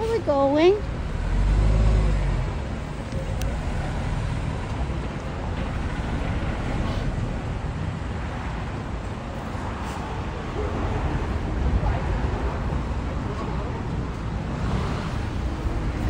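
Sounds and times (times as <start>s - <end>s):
road traffic rumble: 0.0s - 16.0s.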